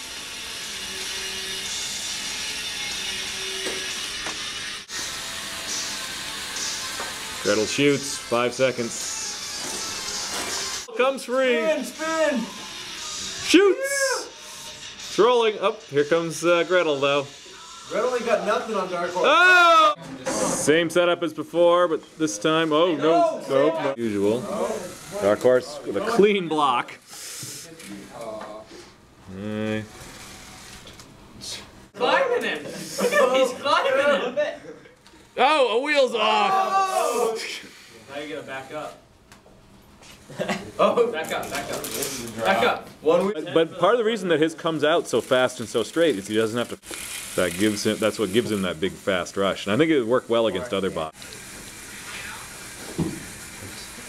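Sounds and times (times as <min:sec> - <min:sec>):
small electric motors whirring: 0:00.0 - 0:10.9, 0:11.7 - 0:15.2, 0:15.8 - 0:19.4, 0:24.0 - 0:26.4, 0:29.3 - 0:31.6, 0:44.6 - 0:49.2, 0:50.6 - 0:54.0.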